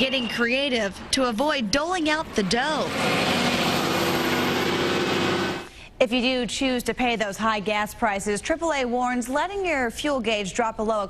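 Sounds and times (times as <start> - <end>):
bus engine humming: 0.0 - 5.7.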